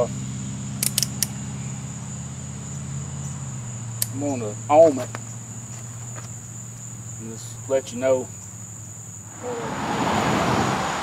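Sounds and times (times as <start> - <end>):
high insect drone: 0.0 - 11.0
sharp clicks: 0.8 - 1.4, 4.0 - 4.3.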